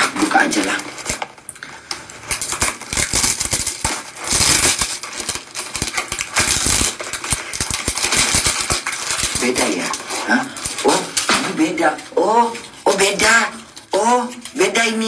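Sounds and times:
packaging rustling and crackling: 0.0s - 14.6s.

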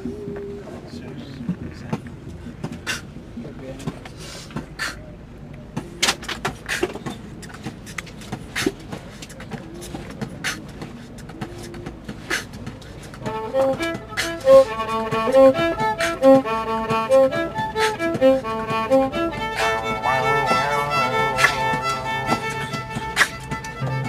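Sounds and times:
low background voices: 0.0s - 24.0s
violin bowing: 13.2s - 24.0s.

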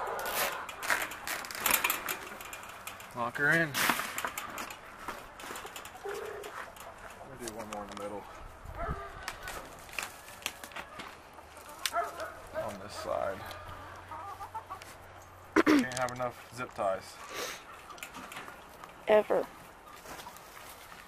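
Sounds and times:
chickens clucking: 4.3s - 7.4s, 8.2s - 16.0s, 16.8s - 21.0s.

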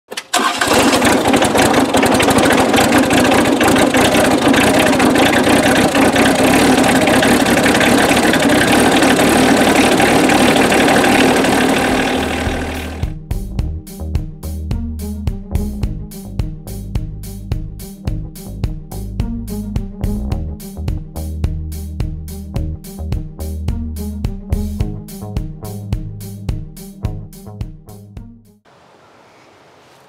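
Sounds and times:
diesel tractor engine running: 0.1s - 13.1s
music: 13.0s - 28.7s.

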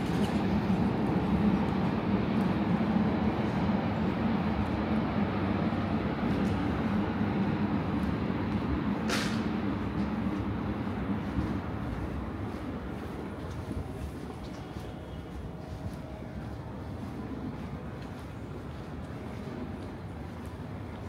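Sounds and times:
train rumbling on tracks: 0.0s - 21.0s
brief hiss: 9.1s - 9.5s.

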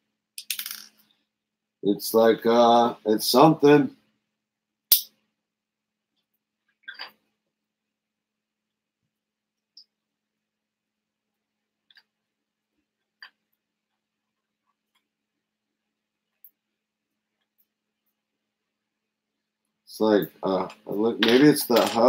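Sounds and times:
plastic pieces clicking: 0.4s - 1.0s, 20.6s - 22.0s.

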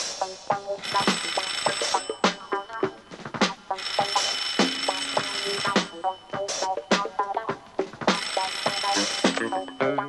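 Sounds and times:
film music: 0.0s - 10.0s
telephone bell ringing: 0.7s - 10.0s.

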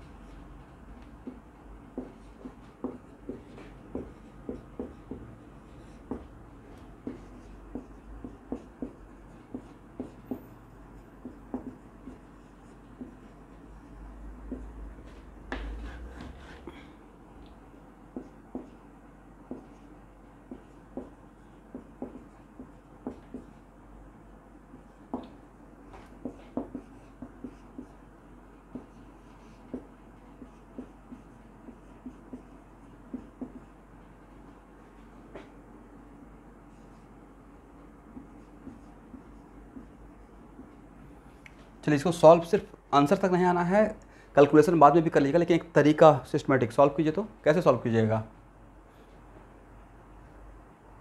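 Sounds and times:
marker writing on whiteboard: 0.0s - 16.8s, 17.4s - 41.0s.

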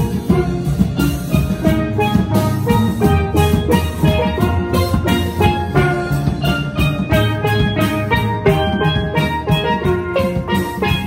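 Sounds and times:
low bass notes: 0.0s - 11.0s
steel pan ensemble playing: 0.0s - 11.0s.

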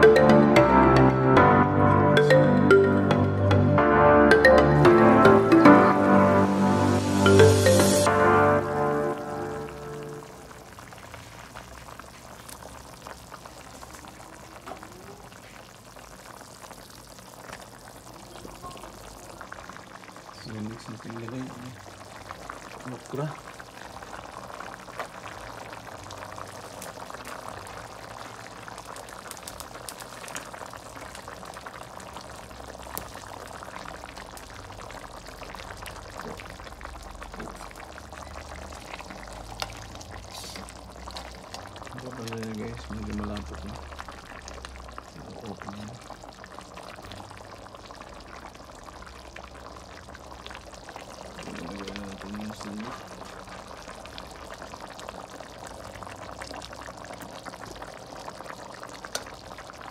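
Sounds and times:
broth bubbling in a pot: 9.0s - 59.9s.

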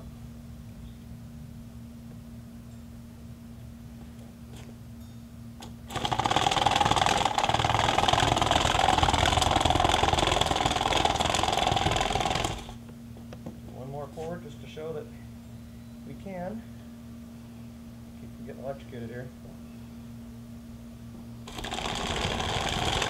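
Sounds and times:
motor driving plastic track: 5.6s - 12.8s, 21.5s - 23.0s.

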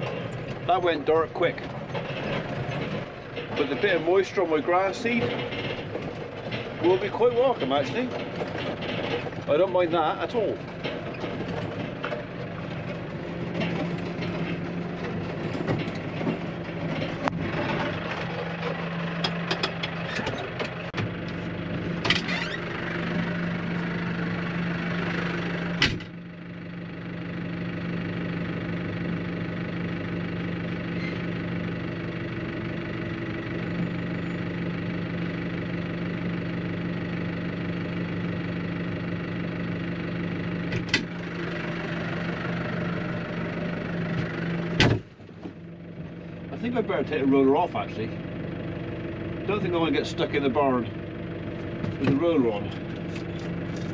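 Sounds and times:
tractor diesel engine idling: 0.0s - 53.9s
sharp clunks: 40.7s - 41.2s, 44.1s - 45.6s.

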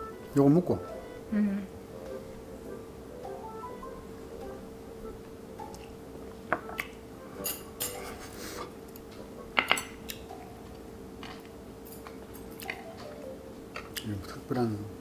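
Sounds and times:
faint steady hum: 0.0s - 15.0s
glass and chopsticks clinking dishes: 7.4s - 8.0s.

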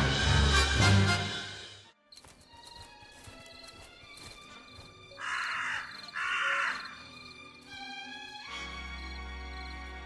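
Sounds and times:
background music: 0.0s - 10.0s
crow cawing: 5.1s - 7.1s.

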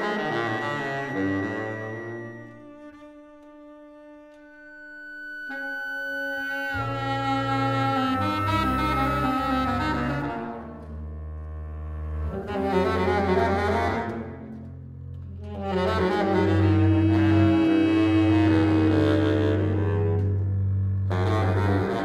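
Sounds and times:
theremin high tone: 0.0s - 3.1s, 4.8s - 10.7s
bowed double bass: 0.0s - 22.0s
saxophone sustained tones: 0.0s - 22.0s.

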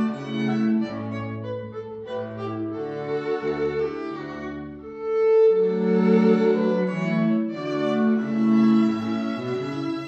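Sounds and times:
string trio playing: 0.0s - 10.0s.

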